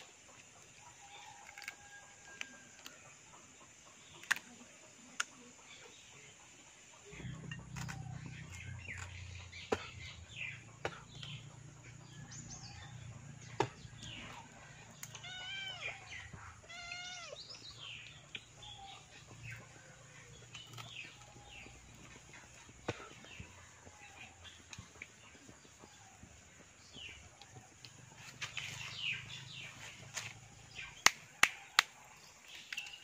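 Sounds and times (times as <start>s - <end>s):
small birds chirping: 0.0s - 33.0s.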